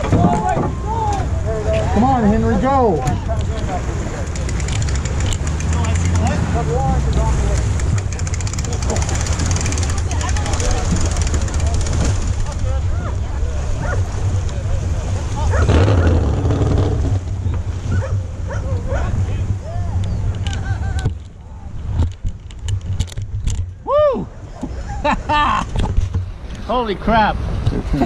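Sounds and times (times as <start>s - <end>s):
engine rumbling: 0.0s - 28.0s.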